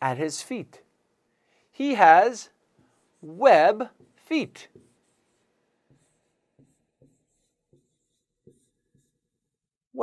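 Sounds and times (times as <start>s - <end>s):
marker writing on a board: 2.5s - 9.8s.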